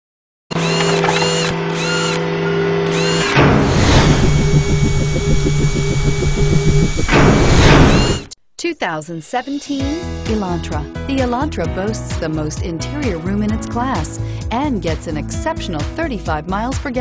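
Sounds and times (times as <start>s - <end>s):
fast pulsing mechanical whir: 0.5s - 8.3s
steady electronic hum: 0.8s - 8.4s
arching electronic chirps: 3.2s - 8.3s.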